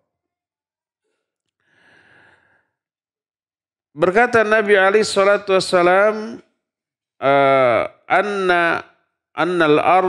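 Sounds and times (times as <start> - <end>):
man breathing in: 1.0 - 2.9.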